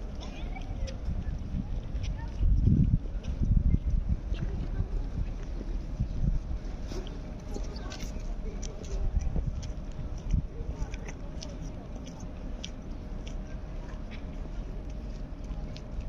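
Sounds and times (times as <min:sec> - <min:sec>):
faint distant voices: 0:00.0 - 0:16.0
wind rumbling on microphone: 0:00.0 - 0:16.0
small clicks and crackles: 0:06.8 - 0:16.0.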